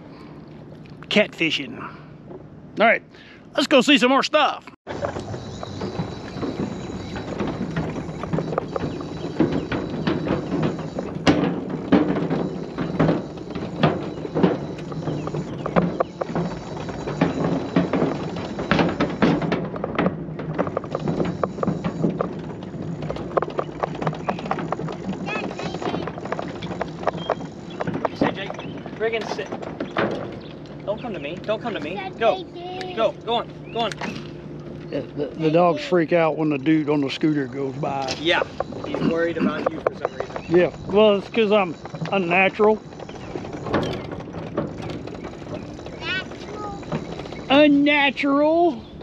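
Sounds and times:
motor hum: 4.9s - 49.0s
wheels knocking on wooden boards: 4.9s - 49.0s.

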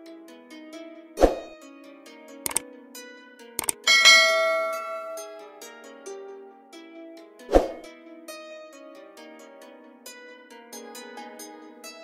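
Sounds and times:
double mouse click: 3.6s - 3.9s
notification bell ding: 3.7s - 5.5s.

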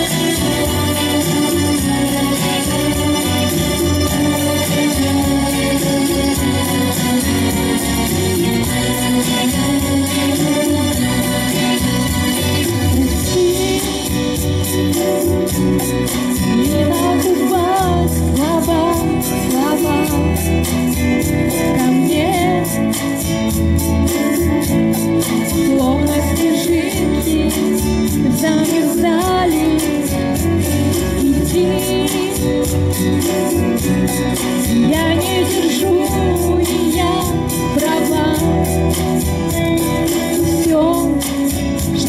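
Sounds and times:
woman singing: 0.0s - 14.8s, 16.3s - 23.3s, 25.4s - 33.9s, 34.5s - 42.0s
pop backing track: 0.0s - 42.0s.

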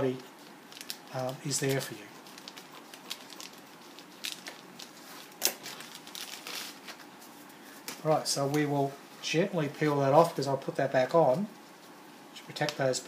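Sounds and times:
plastic bag crinkling: 0.1s - 8.1s.

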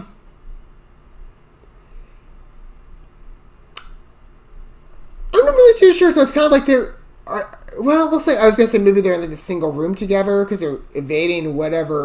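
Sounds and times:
low steady hum: 0.0s - 12.0s
sharp click: 3.7s - 4.0s.

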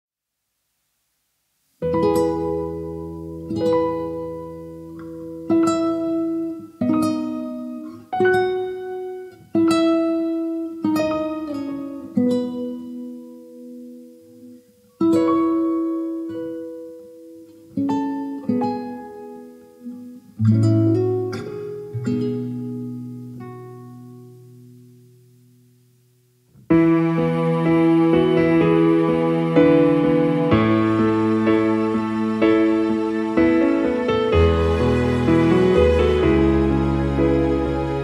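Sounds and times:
plucked string instrument melody: 1.8s - 25.6s, 26.5s - 38.0s.

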